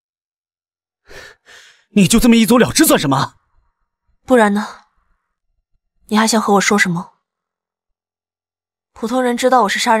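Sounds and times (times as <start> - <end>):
short breaths: 1.0 - 1.9
man speaking: 2.0 - 3.4.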